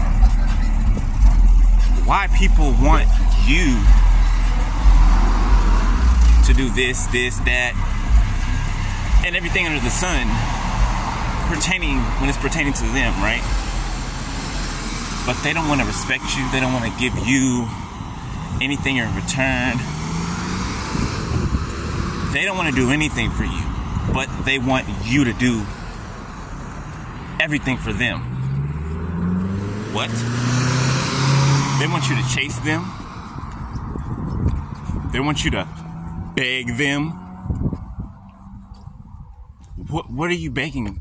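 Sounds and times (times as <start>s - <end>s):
steady low rumble: 0.0s - 29.2s
vehicle engine hum: 0.0s - 41.0s.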